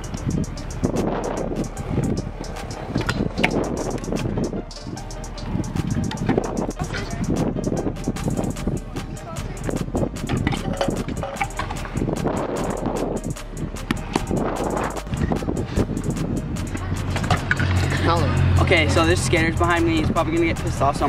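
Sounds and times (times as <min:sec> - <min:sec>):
scooter wheel clicks and knocks: 0:00.0 - 0:07.6, 0:09.6 - 0:12.3, 0:12.9 - 0:18.1
scooter rolling on concrete: 0:00.0 - 0:13.3, 0:13.9 - 0:19.9
background music: 0:00.0 - 0:21.0.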